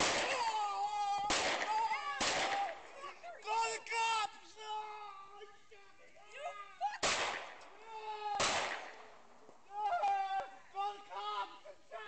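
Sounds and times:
people shouting: 0.0 - 5.3, 7.8 - 8.8, 9.7 - 12.0
handgun shots echoing: 8.4 - 9.0.

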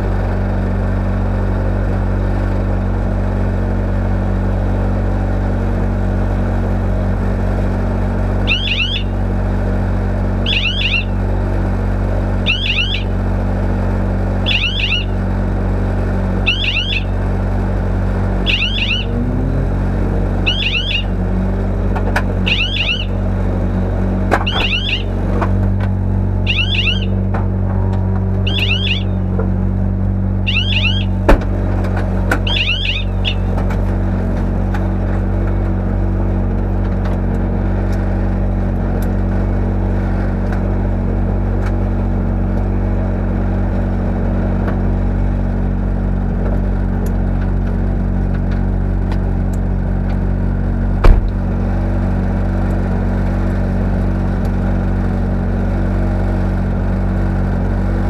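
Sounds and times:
car engine idling: 0.0 - 58.0
short high chirp: 18.5 - 19.1, 28.5 - 29.2, 32.5 - 33.5.

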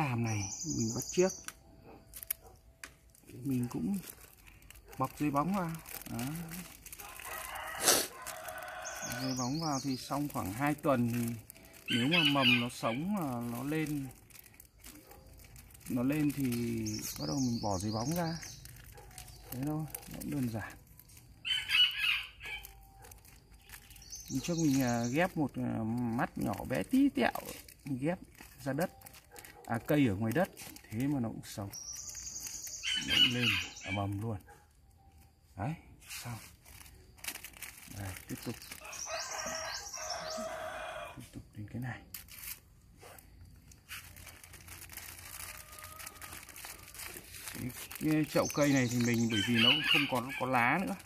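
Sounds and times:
plastic bag crinkling: 0.0 - 40.9, 41.6 - 51.0
rooster crowing: 7.0 - 9.4, 38.8 - 41.2, 45.4 - 46.5.

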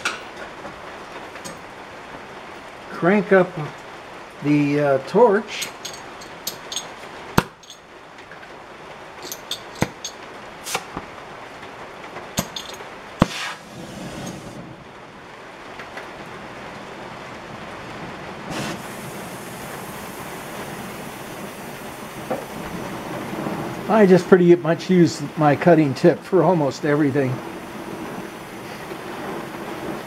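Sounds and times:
sharp clicks and knocks: 9.2 - 11.1, 12.4 - 13.3
cutting torch hissing: 10.6 - 11.0, 12.5 - 14.7, 18.5 - 30.0.

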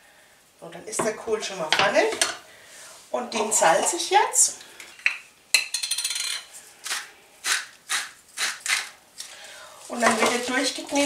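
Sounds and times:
salt mill grinding: 5.7 - 8.9.

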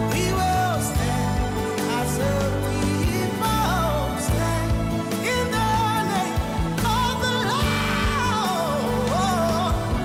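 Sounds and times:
band with steady bass line: 0.0 - 10.0
gospel singer: 0.0 - 10.0.

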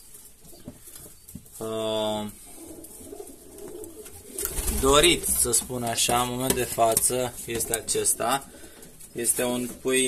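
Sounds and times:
pigeons cooing: 1.9 - 5.4.

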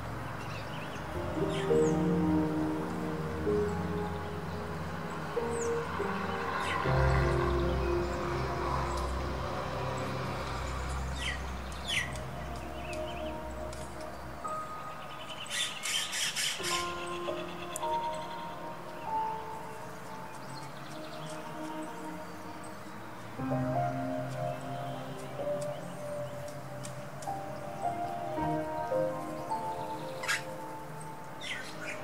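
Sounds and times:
background music: 0.0 - 32.0
bird calls: 11.1 - 23.0, 23.8 - 32.0.

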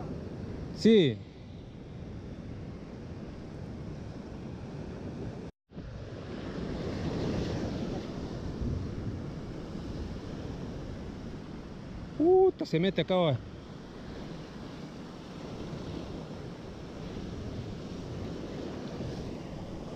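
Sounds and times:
wind buffeting microphone: 1.8 - 12.6, 13.4 - 19.9.

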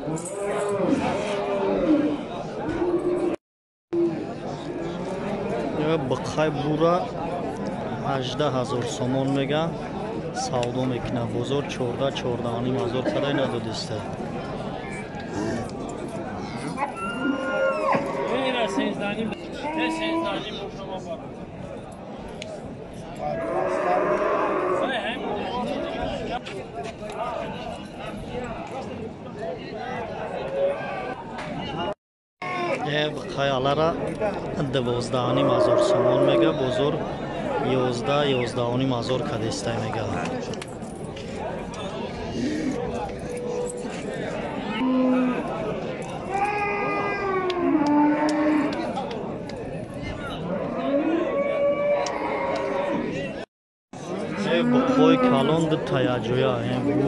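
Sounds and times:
crowd murmur: 0.0 - 3.4, 4.0 - 53.4, 54.0 - 57.0
cow mooing: 23.4 - 25.0, 35.3 - 36.6, 47.2 - 48.8, 50.6 - 53.1, 54.2 - 55.6.

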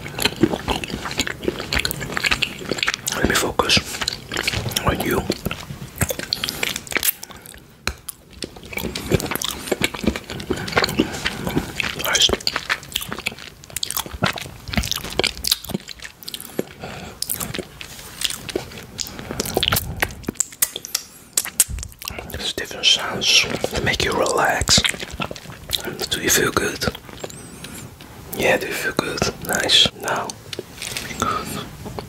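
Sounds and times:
chewing chocolate crunches: 0.0 - 32.0.

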